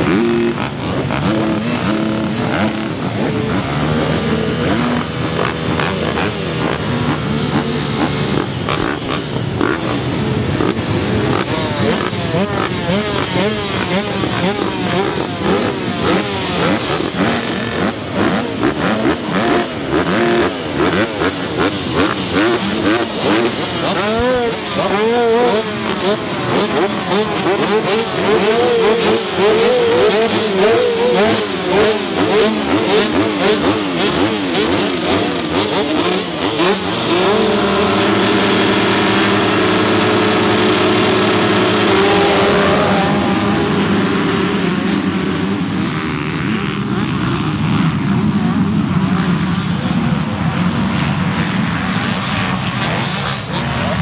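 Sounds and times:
motocross bikes revving: 0.0s - 54.0s.

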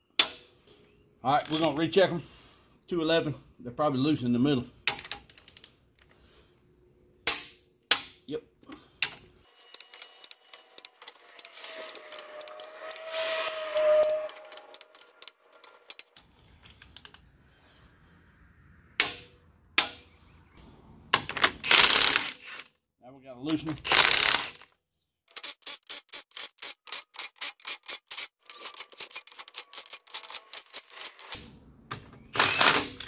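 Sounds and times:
clatter of tools: 9.0s - 17.2s, 25.3s - 31.4s
fast ratchet ticking: 9.7s - 13.0s
torque wrench clicks: 9.7s - 13.1s, 13.7s - 16.1s, 25.3s - 31.4s.

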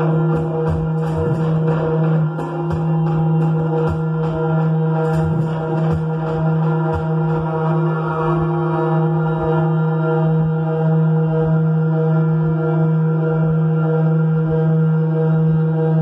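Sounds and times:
soft low thumps: 0.0s - 8.7s
low electronic drone: 0.0s - 16.0s.

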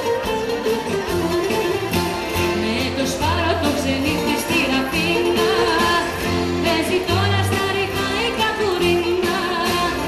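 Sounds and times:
live band playing popular song: 0.0s - 10.0s.

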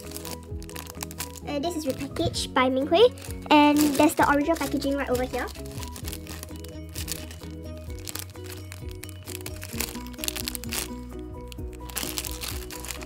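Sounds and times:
background music with melody: 0.0s - 13.0s
plastic packaging crinkling: 0.0s - 13.0s.

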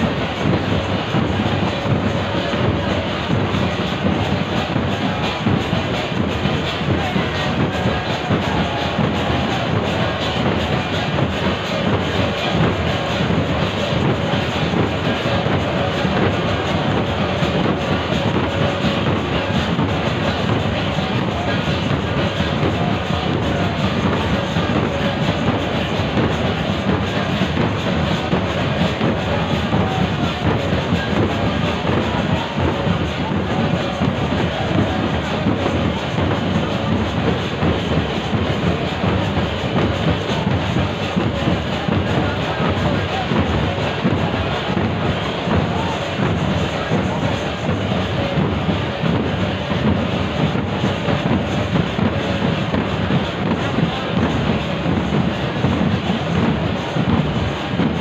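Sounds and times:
dense crowd noise: 0.0s - 58.0s
rhythmic drumming: 0.0s - 58.0s.

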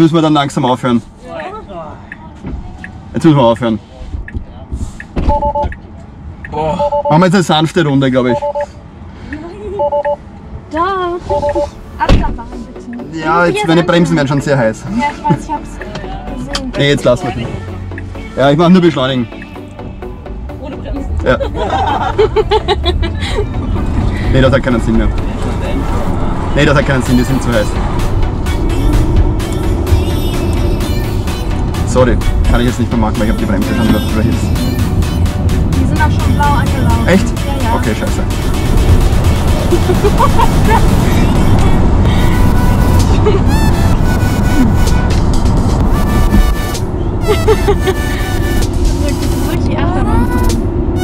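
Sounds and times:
road and tyre rumble: 0.0s - 51.0s
electronic background music: 11.3s - 51.0s
woman laughing: 14.9s - 15.6s, 21.3s - 23.7s, 39.7s - 41.0s, 43.1s - 43.5s, 47.2s - 48.4s.

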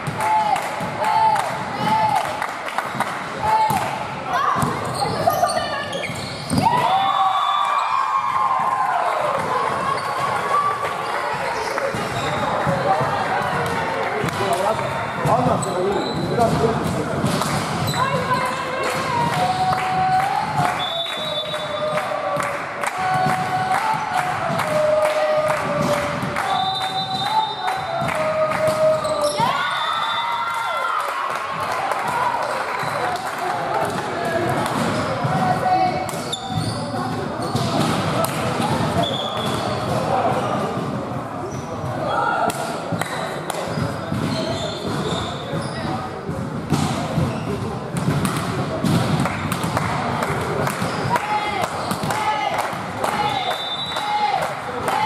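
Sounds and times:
volleyball hits and bounces: 6.0s - 7.1s, 11.8s - 20.9s, 21.6s - 29.6s, 31.6s - 41.2s, 41.8s - 53.8s.

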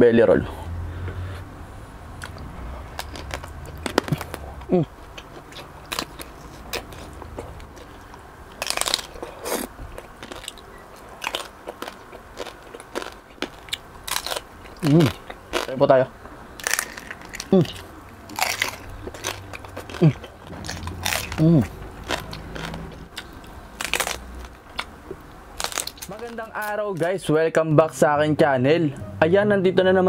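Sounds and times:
crunchy food chewing: 2.2s - 15.8s, 16.6s - 27.1s
person humming: 4.1s - 4.9s.

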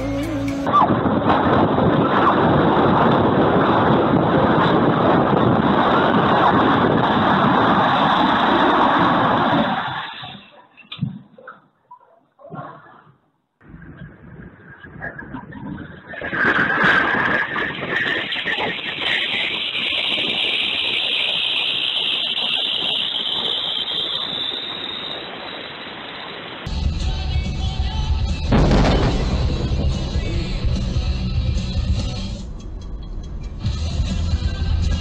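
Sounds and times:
wind rushing: 0.7s - 10.2s, 28.2s - 35.0s.

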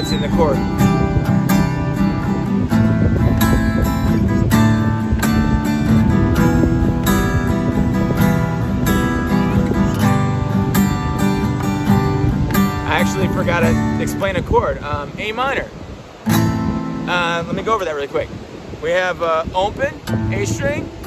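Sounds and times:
acoustic guitar strumming chords: 0.0s - 17.9s, 19.7s - 21.0s.

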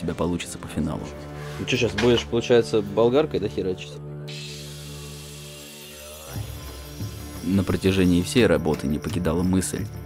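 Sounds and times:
background music: 0.0s - 10.0s
angle grinder on wood: 4.3s - 8.3s.

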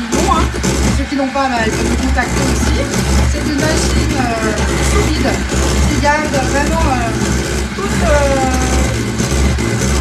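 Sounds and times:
electric hand mixer running: 0.0s - 10.0s.

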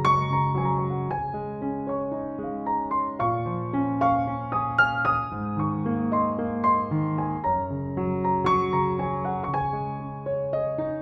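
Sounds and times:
calm piano music: 0.0s - 11.0s.

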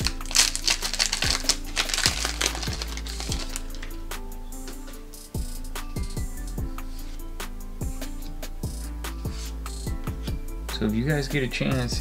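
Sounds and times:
foil wrapper tearing and crinkling: 0.0s - 4.0s
music with drum beat: 0.0s - 12.0s.

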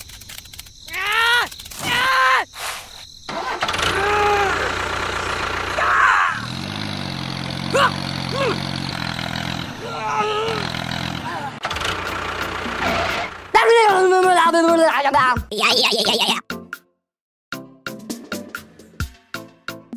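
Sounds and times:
engine rumbling: 3.2s - 14.2s.

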